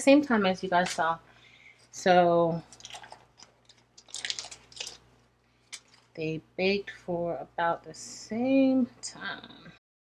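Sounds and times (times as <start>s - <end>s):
paper and tape crinkling: 2.6s - 6.2s.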